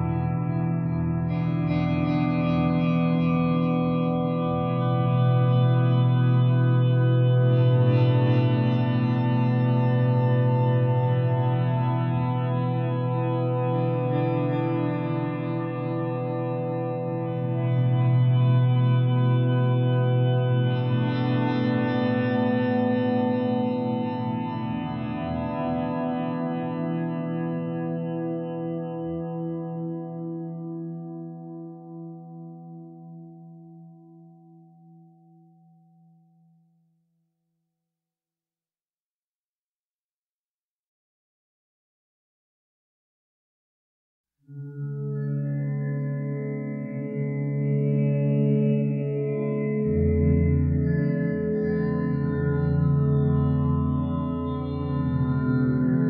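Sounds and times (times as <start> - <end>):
ambient guitar music: 0.0 - 35.8, 44.5 - 56.0.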